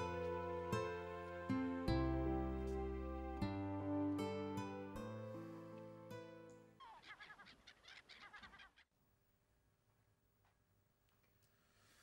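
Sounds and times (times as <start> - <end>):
small birds chirping: 6.5 - 8.9.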